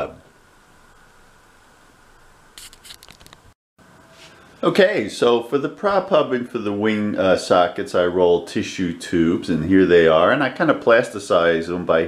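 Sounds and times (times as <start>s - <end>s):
room hiss: 0.0s - 12.0s
small clicks: 2.6s - 3.5s
crinkly rustling: 2.6s - 3.6s.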